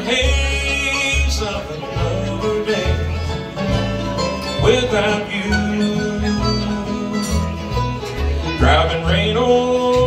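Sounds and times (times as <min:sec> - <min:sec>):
acoustic guitar: 0:00.0 - 0:10.0
banjo: 0:00.0 - 0:10.0
dobro: 0:00.0 - 0:10.0
mandolin: 0:00.0 - 0:10.0
upright bass notes: 0:00.0 - 0:10.0.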